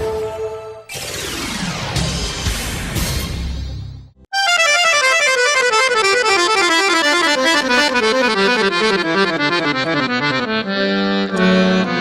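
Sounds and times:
accordion fast descending notes: 4.3 - 12.0.

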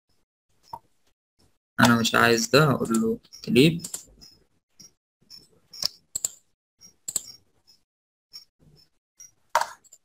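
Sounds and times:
computer mouse clicks: 2.8 - 7.4, 9.2 - 10.0.

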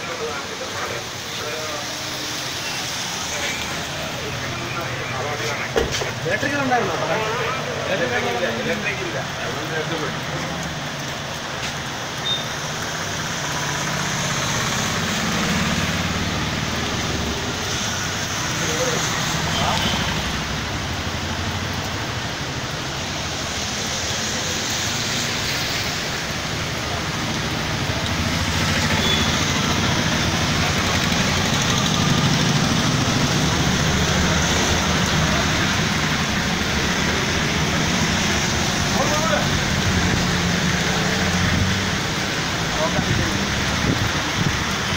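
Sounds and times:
heavy rain: 0.0 - 44.9
vehicles passing on wet road: 0.0 - 44.9
wind: 0.0 - 44.9.

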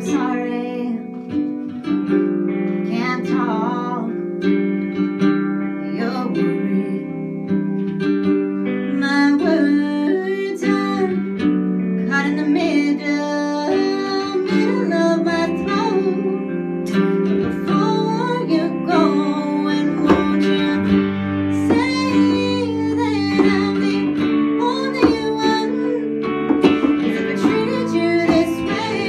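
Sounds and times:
woman singing: 0.0 - 7.9, 8.6 - 29.0
electric guitar: 0.0 - 29.0
strummed ukulele: 0.0 - 29.0.

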